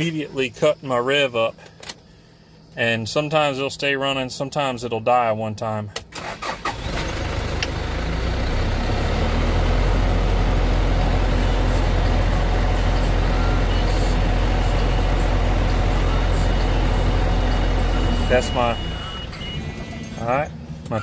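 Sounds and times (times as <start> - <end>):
diesel engine cranking: 6.0 - 21.0
diesel truck engine running: 6.2 - 21.0.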